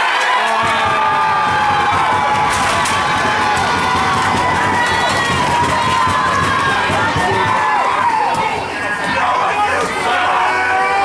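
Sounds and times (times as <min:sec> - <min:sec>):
crowd cheering and yelling: 0:00.0 - 0:11.0.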